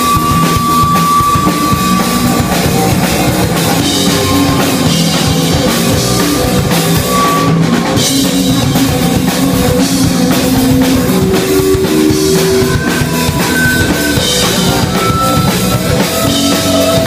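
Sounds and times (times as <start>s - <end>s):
driving drum kit: 0.0s - 17.0s
electric guitars: 0.0s - 17.0s.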